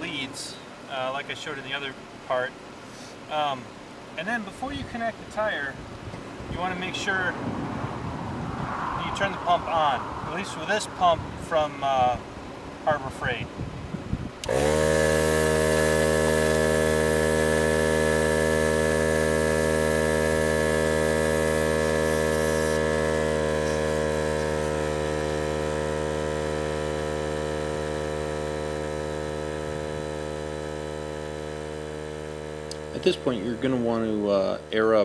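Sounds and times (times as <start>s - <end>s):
air compressor motor humming: 14.2s - 35.0s.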